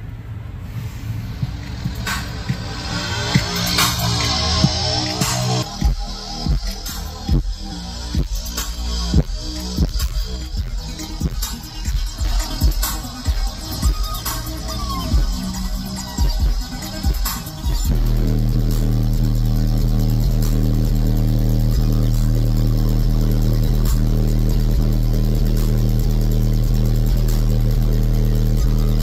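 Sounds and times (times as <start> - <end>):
bass-heavy music through car speakers: 0.0 - 29.0.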